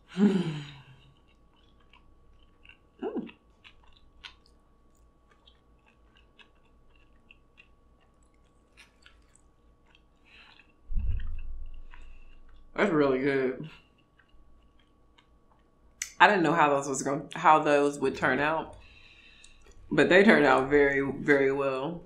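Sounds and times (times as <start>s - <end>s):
person chewing with wet clicks: 0.8s - 12.8s, 13.7s - 16.2s, 18.7s - 19.9s.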